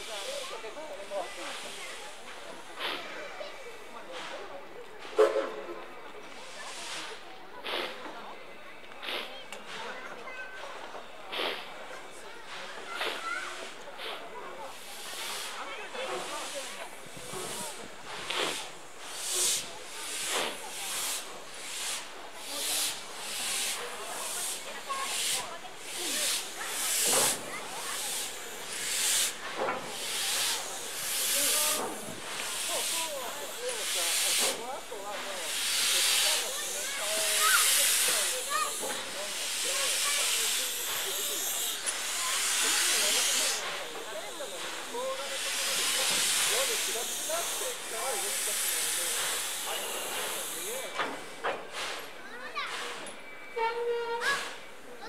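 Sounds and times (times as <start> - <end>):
steam locomotive hissing steam: 0.0 - 55.0.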